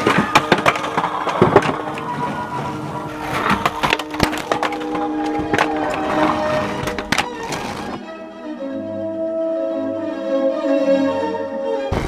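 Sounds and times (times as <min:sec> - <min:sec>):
skateboards clattering on ground: 0:00.0 - 0:08.0.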